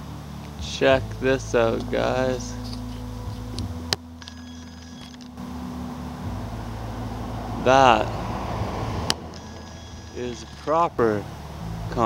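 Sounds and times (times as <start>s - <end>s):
steady low hum: 0.0s - 12.0s
faint thin high tones: 9.4s - 10.8s.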